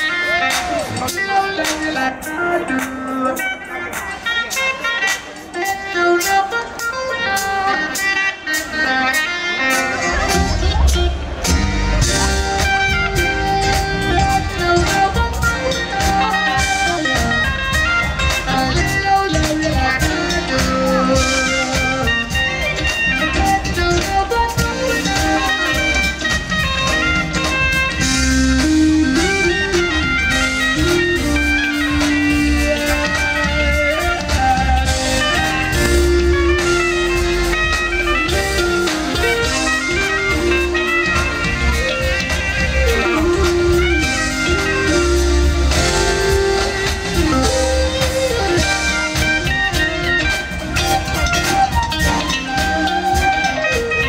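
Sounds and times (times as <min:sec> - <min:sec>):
soprano saxophone: 0:00.0 - 0:11.2, 0:12.0 - 0:54.0
bass and drums: 0:00.0 - 0:54.0
electric guitar: 0:00.0 - 0:54.0
funk band playing: 0:00.0 - 0:54.0
keyboards: 0:00.0 - 0:54.0.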